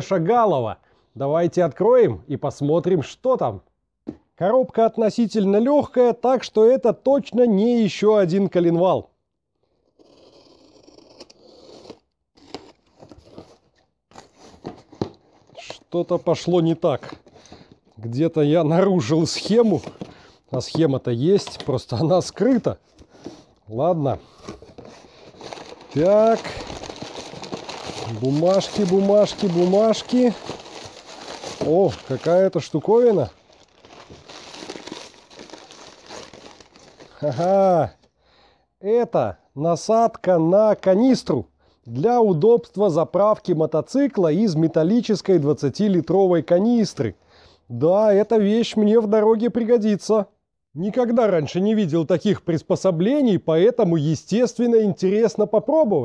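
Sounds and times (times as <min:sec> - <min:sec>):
paper crinkling and rustling: 0:19.1 - 0:23.5, 0:24.2 - 0:37.5.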